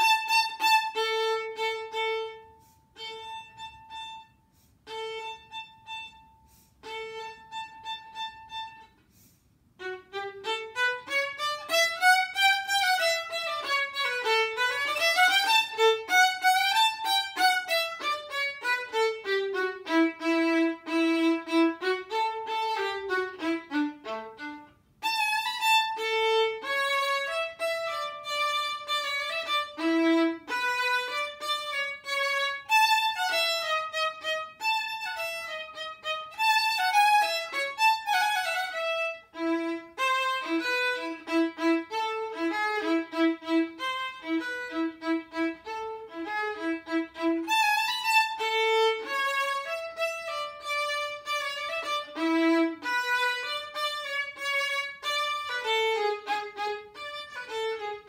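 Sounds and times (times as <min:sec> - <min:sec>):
solo violin melody: 0:00.0 - 0:58.0.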